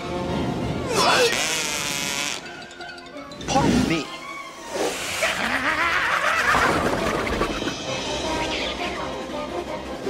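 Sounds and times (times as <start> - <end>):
film score music: 0.0 - 10.0.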